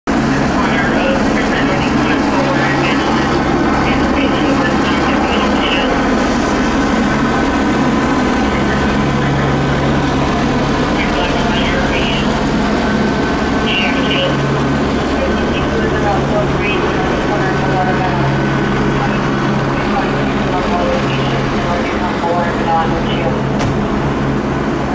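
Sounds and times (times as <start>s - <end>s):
idling vehicles and traffic rumble: 0.1s - 24.9s.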